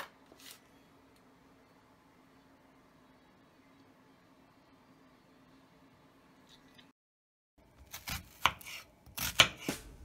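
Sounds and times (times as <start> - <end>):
knife cutting onion on board: 7.7 - 10.0.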